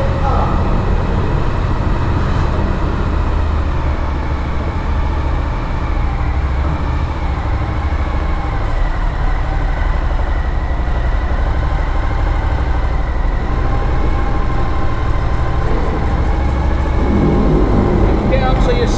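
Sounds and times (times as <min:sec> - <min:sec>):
motorcycle engine rumbling: 0:00.0 - 0:18.9.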